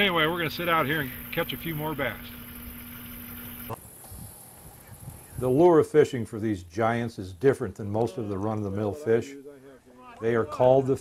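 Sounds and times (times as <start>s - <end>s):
low hum: 0.0s - 3.8s.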